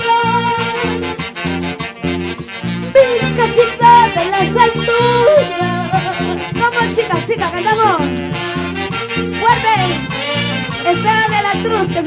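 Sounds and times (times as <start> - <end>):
live band with saxophones: 0.0 - 12.0.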